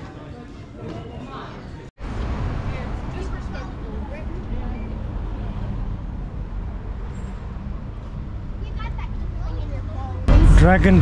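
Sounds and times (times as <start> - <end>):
faint voices of passers-by: 0.0 - 11.0
traffic rumble: 1.9 - 11.0.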